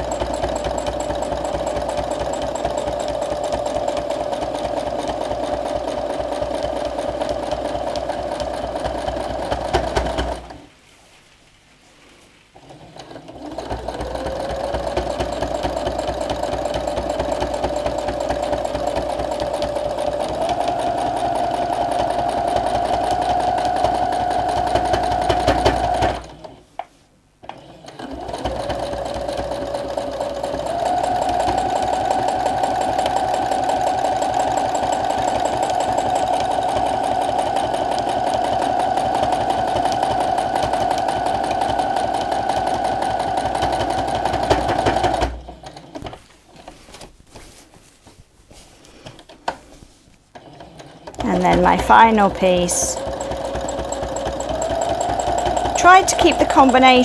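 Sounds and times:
sewing machine running: 0.0s - 10.6s, 12.6s - 26.6s, 27.4s - 46.2s, 50.3s - 57.0s.

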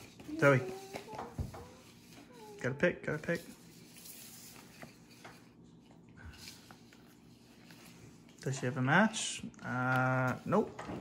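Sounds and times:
paper cards rustling: 0.0s - 10.8s.

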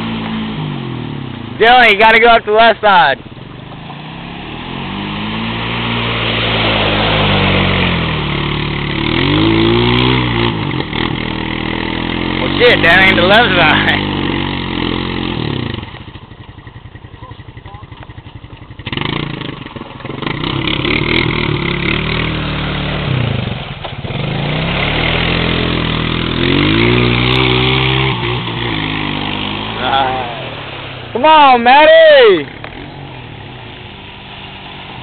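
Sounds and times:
atv engine revving: 0.0s - 35.0s.

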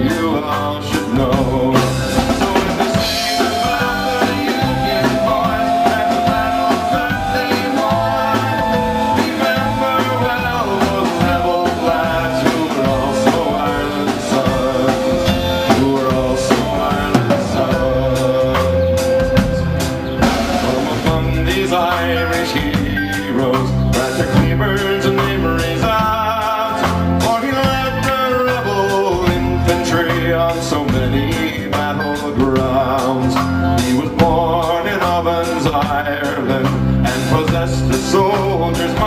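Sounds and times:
folk-rock band playing: 0.0s - 39.0s
person singing: 0.0s - 39.0s
tin whistle melody: 2.4s - 23.2s.

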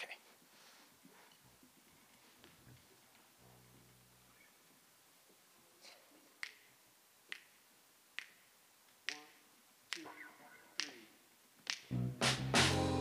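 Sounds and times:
finger snaps: 6.4s - 6.7s, 7.3s - 7.6s, 8.2s - 8.4s, 9.1s - 10.2s, 10.8s - 11.0s, 11.6s - 12.0s
jazz band playing: 11.9s - 13.0s.

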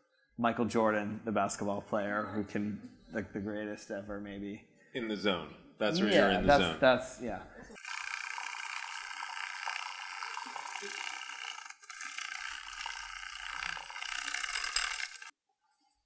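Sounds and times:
tea whisk frothy scratching: 7.8s - 15.3s.

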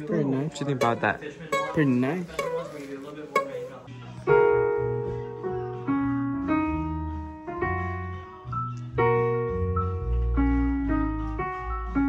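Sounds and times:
digital piano chord ringing: 0.8s - 2.6s.

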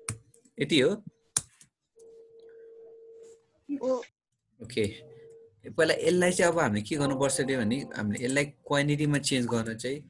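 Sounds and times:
steady mid-pitched tone: 7.0s - 8.5s.

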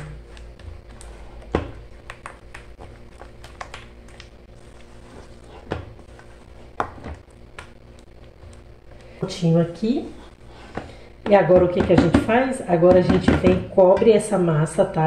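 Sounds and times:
spatula knocking metal bowl: 11.3s - 14.2s.

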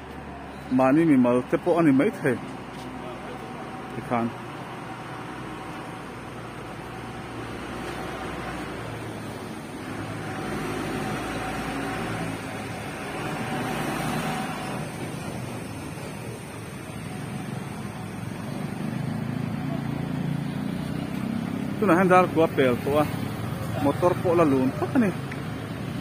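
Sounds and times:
vehicles passing: 0.0s - 26.0s.

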